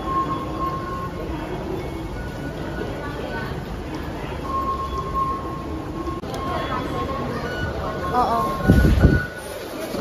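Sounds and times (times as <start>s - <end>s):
underground train rumble: 0.0s - 10.0s.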